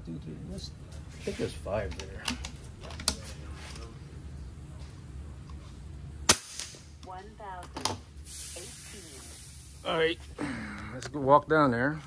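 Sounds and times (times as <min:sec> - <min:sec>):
air rifle shot crack: 0:06.3 - 0:06.9.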